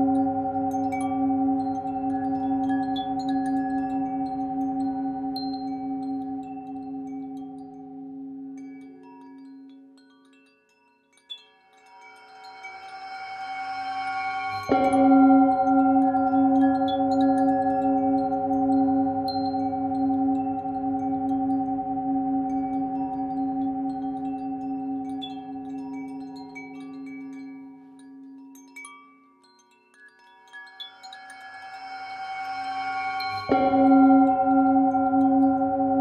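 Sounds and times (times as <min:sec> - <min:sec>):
singing bowl ringing: 0:00.0 - 0:09.5, 0:11.9 - 0:28.3, 0:30.4 - 0:36.0
wind chimes tinkling: 0:00.0 - 0:36.0.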